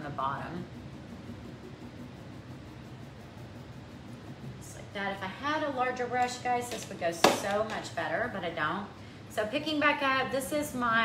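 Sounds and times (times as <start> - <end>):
even room hiss: 0.0 - 11.0
faint low hum: 0.0 - 11.0.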